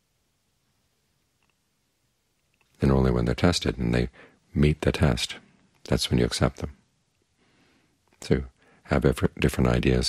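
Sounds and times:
faint clicks: 0:01.4 - 0:01.7, 0:02.3 - 0:02.8
man speaking: 0:02.8 - 0:06.8, 0:08.2 - 0:10.0.

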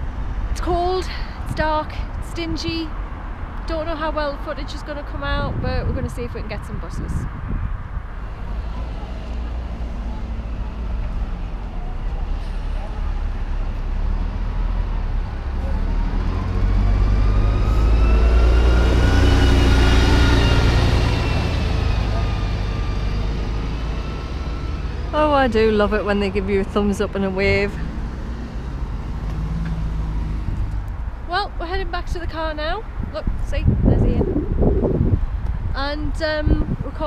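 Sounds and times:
bus diesel engine passing: 0:00.0 - 0:37.0
road traffic: 0:00.0 - 0:37.0.

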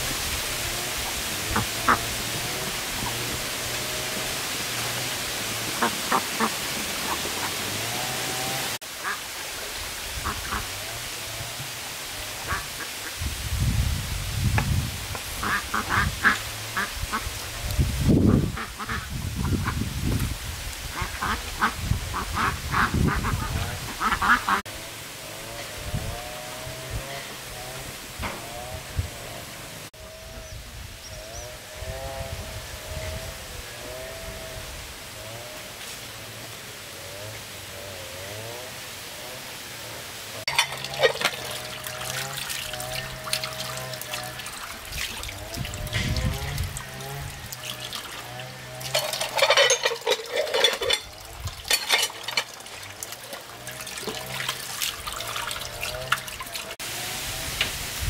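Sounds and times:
ducks quacking: 0:01.0 - 0:09.3, 0:10.2 - 0:11.0, 0:12.4 - 0:13.2, 0:15.4 - 0:17.6, 0:18.2 - 0:19.8, 0:20.9 - 0:24.7.

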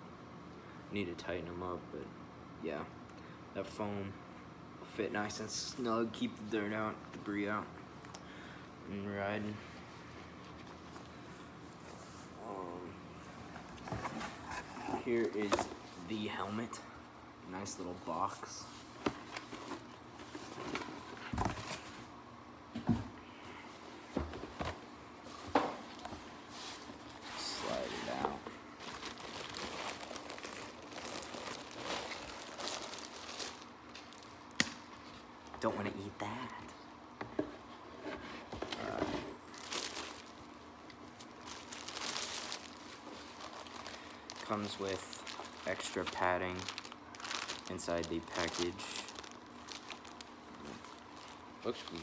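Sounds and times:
plastic bag crinkling: 0:27.3 - 0:34.6, 0:38.8 - 0:52.0.

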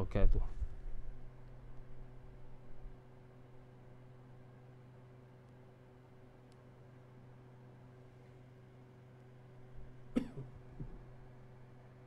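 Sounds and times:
steady low hum: 0:00.0 - 0:12.0
man coughing: 0:10.2 - 0:11.0.

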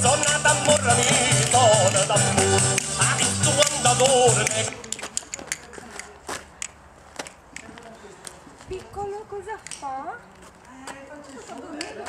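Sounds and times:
wooden castanets clicking: 0:00.2 - 0:07.7.

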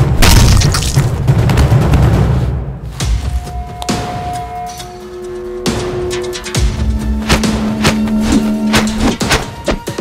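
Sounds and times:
action film score: 0:00.0 - 0:10.0.

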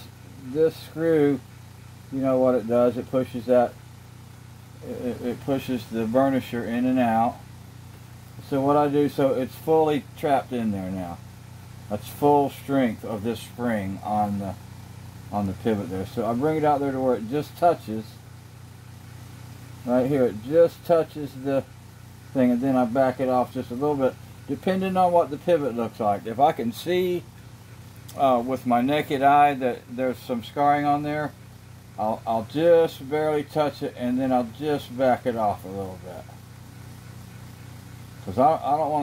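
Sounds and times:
person speaking: 0:00.0 - 0:01.4, 0:02.1 - 0:03.8, 0:04.8 - 0:07.4, 0:08.4 - 0:11.2, 0:11.9 - 0:14.6, 0:15.3 - 0:18.2, 0:19.8 - 0:21.7, 0:22.3 - 0:27.3, 0:28.1 - 0:31.3, 0:32.0 - 0:36.4, 0:38.2 - 0:39.0
low room hum: 0:00.0 - 0:39.0.

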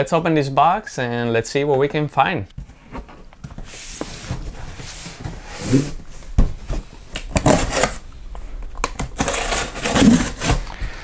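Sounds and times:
cardboard box scraping on desk: 0:03.6 - 0:06.0, 0:09.2 - 0:10.6.

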